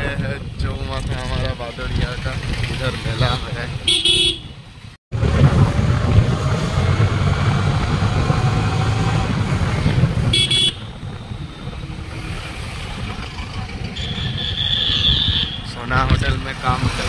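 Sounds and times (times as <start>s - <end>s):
motorcycle engine rumble: 0.0s - 17.0s
wind noise: 0.0s - 17.0s
high horn tone: 3.3s - 4.5s, 10.3s - 11.0s
vehicle horn toot: 3.9s - 4.5s, 10.3s - 10.9s, 14.0s - 15.6s.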